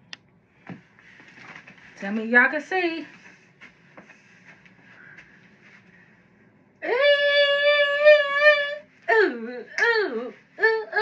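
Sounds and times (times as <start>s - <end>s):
woman singing long high note: 6.8s - 11.0s.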